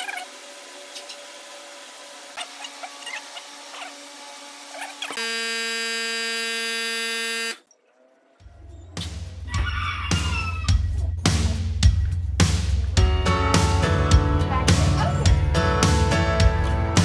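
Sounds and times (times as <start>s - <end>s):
buzzer-like tone: 5.1s - 7.6s
music with heavy bass: 10.2s - 17.0s.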